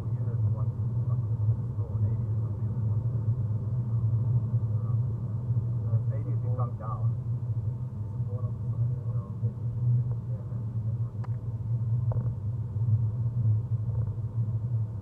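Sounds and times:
road and tyre rumble in car: 0.0s - 15.0s.

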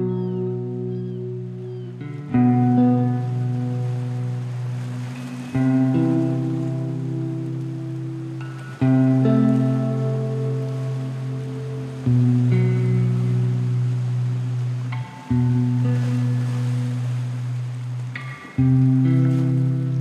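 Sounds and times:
soft rock chords ringing: 0.0s - 20.0s
soft steady hiss: 0.0s - 20.0s.

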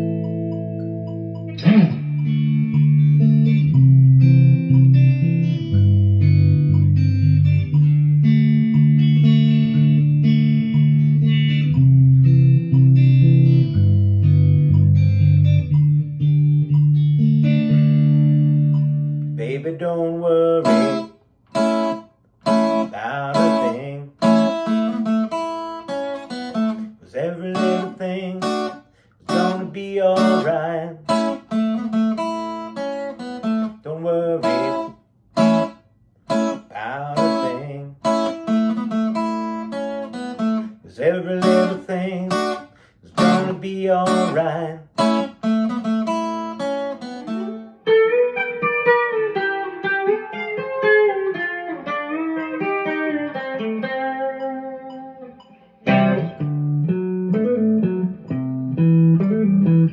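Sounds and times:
bass notes: 0.0s - 25.4s, 54.0s - 59.9s
clean electric guitar notes: 0.0s - 59.9s
strummed guitar chords: 0.0s - 59.9s.

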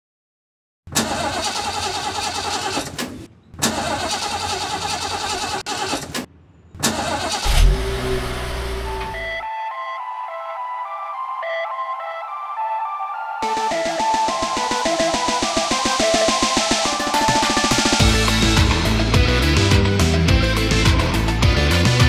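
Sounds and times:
car engine cranking and starting: 0.9s - 9.4s
synth melody: 7.5s - 17.7s.

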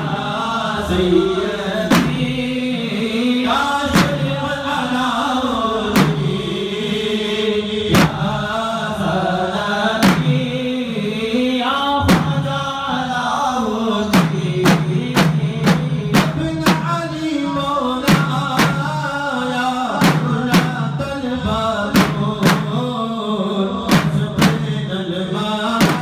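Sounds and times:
drum strikes: 0.0s - 2.9s, 3.8s - 5.0s, 5.9s - 6.6s, 7.9s - 8.5s, 10.0s - 10.7s, 12.0s - 13.1s, 14.1s - 23.0s, 23.8s - 24.9s, 25.6s - 26.0s
men chanting: 0.0s - 26.0s.

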